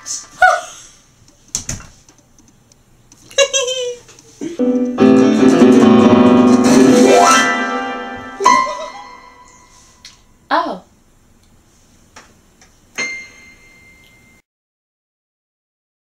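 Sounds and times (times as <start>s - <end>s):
electronic keyboard chord: 4.6s - 9.6s
woman's voice: 10.5s - 10.9s.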